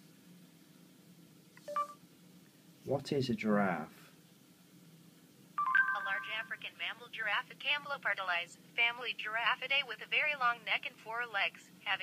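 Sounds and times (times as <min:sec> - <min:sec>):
short electronic beeps: 0:05.6 - 0:06.4.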